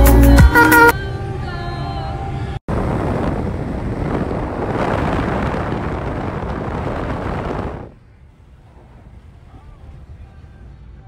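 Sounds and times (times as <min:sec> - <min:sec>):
wind and road noise from car: 0:00.9 - 0:11.0.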